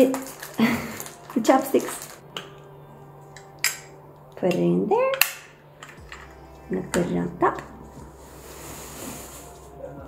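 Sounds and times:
chopsticks in plastic sleeve clicking: 0:00.0 - 0:02.5.

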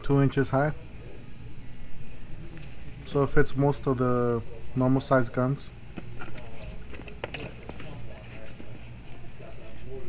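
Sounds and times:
faint distant voices: 0:00.0 - 0:10.0
steady low hum: 0:00.0 - 0:10.0.

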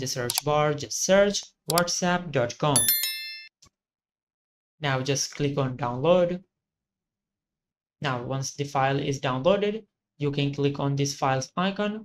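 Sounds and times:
bell-like ding: 0:02.8 - 0:03.5.

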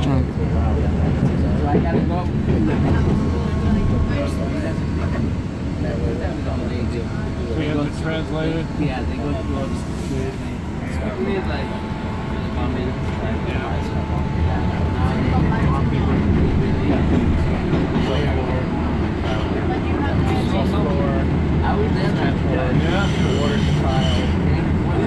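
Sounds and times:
train wheels rumbling on rails: 0:00.0 - 0:25.0.

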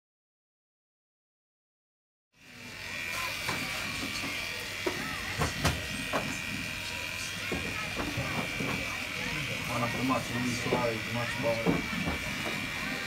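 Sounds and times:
electric hair clippers buzzing: 0:02.4 - 0:13.0.

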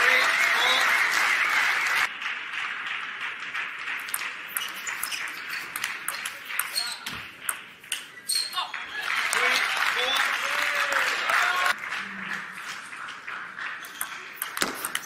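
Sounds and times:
crowd voices in large hall: 0:00.0 - 0:15.0
table tennis ball clicking: 0:04.0 - 0:08.1.

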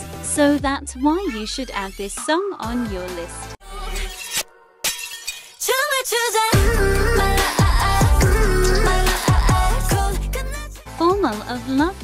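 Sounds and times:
pop music: 0:00.0 - 0:12.0
person singing: 0:05.7 - 0:11.7.

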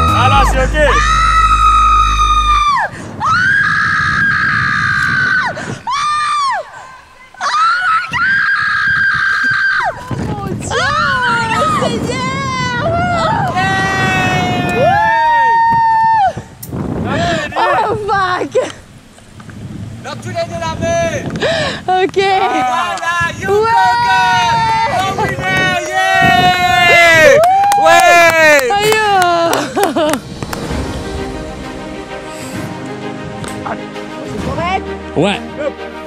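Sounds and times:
wind on microphone: 0:00.0 - 0:06.8, 0:07.6 - 0:34.7
woman screaming in fright: 0:00.9 - 0:06.7, 0:10.7 - 0:16.4.

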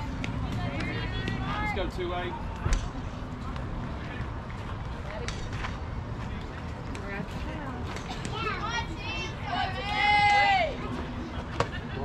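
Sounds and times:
girls calling out and cheering: 0:08.2 - 0:11.0.

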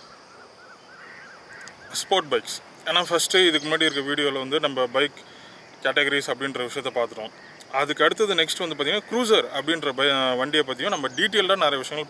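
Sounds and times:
bird chirping: 0:00.0 - 0:12.0.

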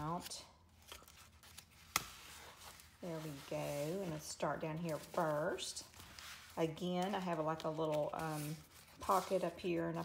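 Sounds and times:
faint paper rustling: 0:00.0 - 0:10.0.

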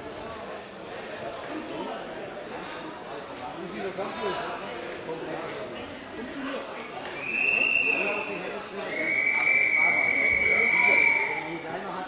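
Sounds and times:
referee whistle blasts: 0:07.2 - 0:08.3, 0:08.9 - 0:11.5.

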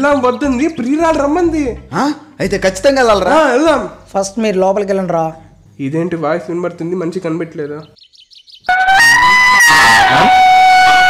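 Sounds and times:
held brass horn note: 0:08.7 - 0:11.0.

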